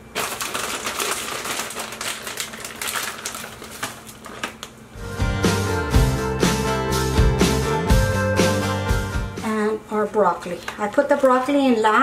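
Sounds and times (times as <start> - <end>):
shredded cheese crackling and rustling: 0.1 - 4.8
background music: 5.0 - 9.6.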